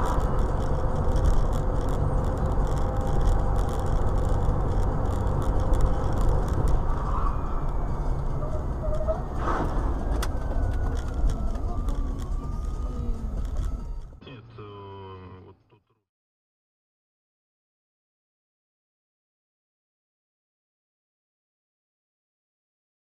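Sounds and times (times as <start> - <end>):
car road and engine rumble: 0.0 - 15.8.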